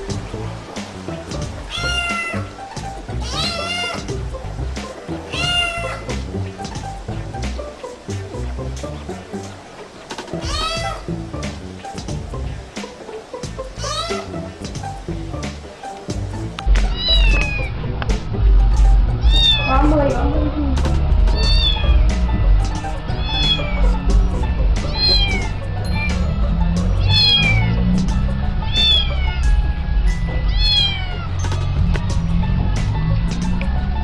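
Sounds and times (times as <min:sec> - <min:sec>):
background music with heavy bass: 0:00.0 - 0:34.0
kitten meowing: 0:01.6 - 0:02.6, 0:03.2 - 0:04.1, 0:05.3 - 0:06.2, 0:10.4 - 0:11.1, 0:13.8 - 0:14.3, 0:16.7 - 0:17.7, 0:19.2 - 0:20.2, 0:21.3 - 0:24.0, 0:24.8 - 0:26.4, 0:27.0 - 0:27.8, 0:28.6 - 0:31.5.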